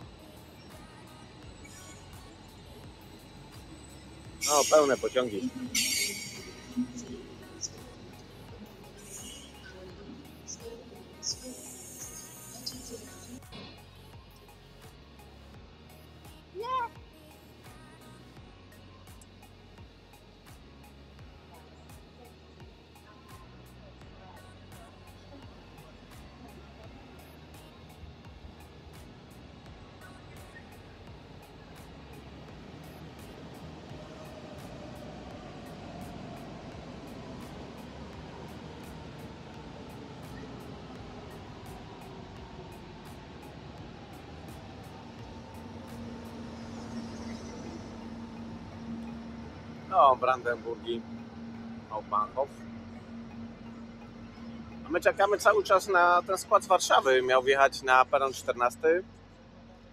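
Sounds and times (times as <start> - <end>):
locomotive whine: 0.0 - 14.5, 25.1 - 59.9
background music: 0.0 - 59.9
train rolling past: 0.6 - 13.4, 28.6 - 59.9.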